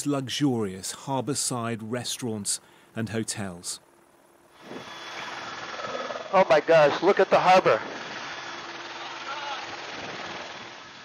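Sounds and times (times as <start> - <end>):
helicopter noise inside cabin: 2.6 - 11.0.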